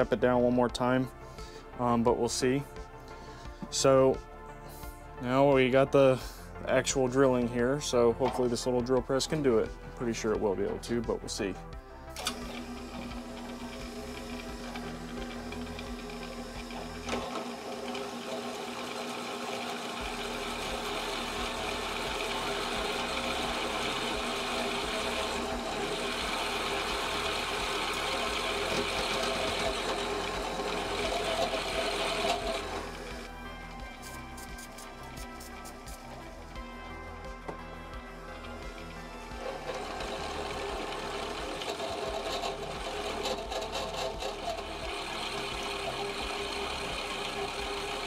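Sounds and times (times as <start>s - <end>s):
background music: 0.0s - 48.0s
drill press motor hum: 12.1s - 48.0s
drill bit cutting metal: 12.2s - 36.6s, 38.4s - 48.0s.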